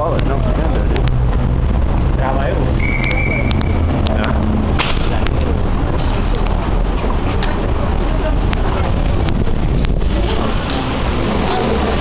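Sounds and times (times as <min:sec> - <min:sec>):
low rumble of traffic: 0:00.0 - 0:12.0
passersby's voices: 0:00.0 - 0:12.0.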